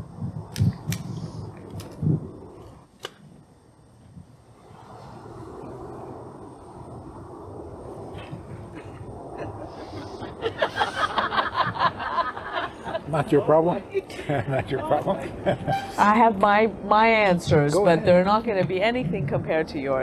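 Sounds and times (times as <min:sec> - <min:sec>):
sharp clicks: 0:00.5 - 0:02.1.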